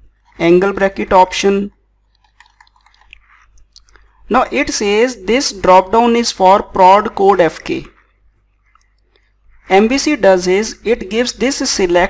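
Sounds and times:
small clicks: 0:02.0 - 0:04.0.

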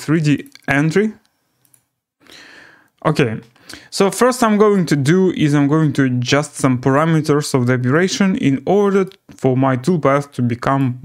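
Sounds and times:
speech: 0:00.0 - 0:01.2, 0:03.0 - 0:11.0.

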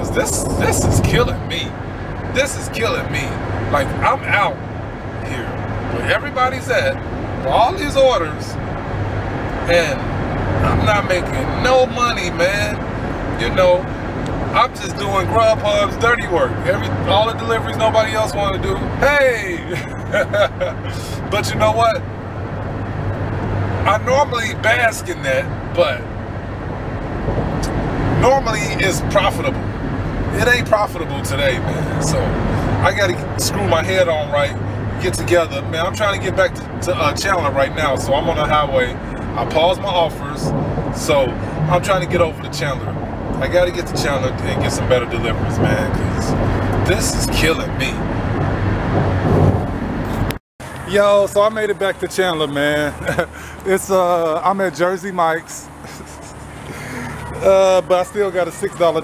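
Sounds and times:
car engine hum: 0:00.0 - 0:59.0.

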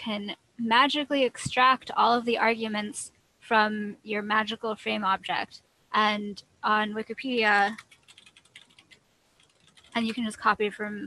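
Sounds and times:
typing on computer keyboard: 0:07.7 - 0:10.1.

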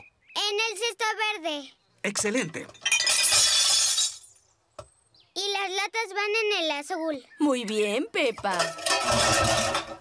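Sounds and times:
glass bottles crashing: 0:02.6 - 0:04.4, 0:08.5 - 0:10.0.

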